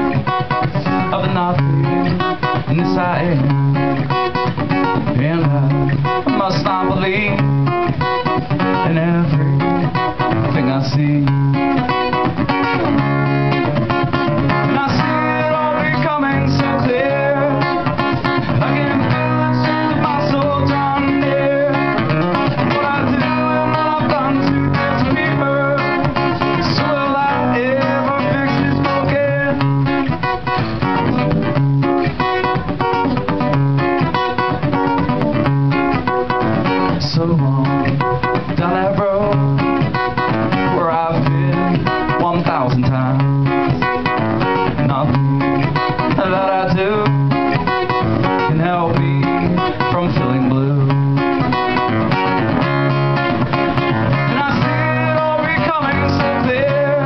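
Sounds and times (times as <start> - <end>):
man singing: 0.0 - 30.6, 36.0 - 52.4, 53.2 - 57.0
acoustic guitar strumming: 0.0 - 57.0.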